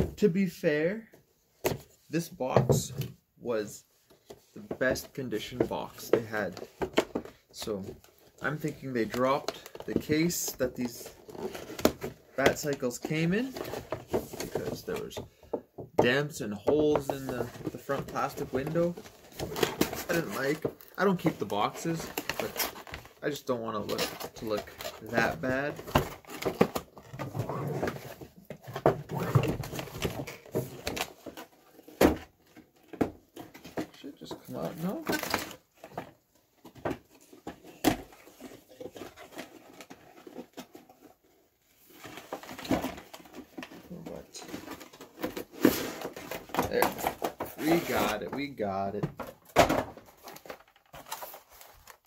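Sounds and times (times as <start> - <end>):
packaging rustling and scraping: 4.1 - 15.2, 16.9 - 52.0.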